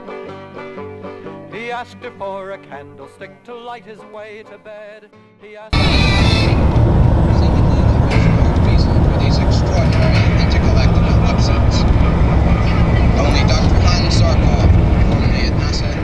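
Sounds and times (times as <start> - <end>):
car engine and tyre rumble: 5.8 - 16.0
indistinct voices: 5.8 - 16.0.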